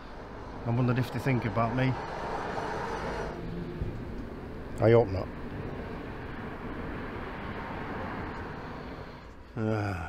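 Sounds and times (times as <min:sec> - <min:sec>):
distant traffic rumble: 0:00.0 - 0:10.0.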